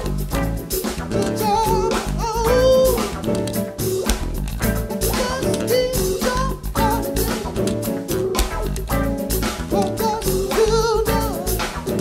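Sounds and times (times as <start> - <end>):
live funk band playing: 0.0 - 12.0
man singing lead vocal: 1.1 - 4.3, 4.9 - 8.7, 9.7 - 12.0.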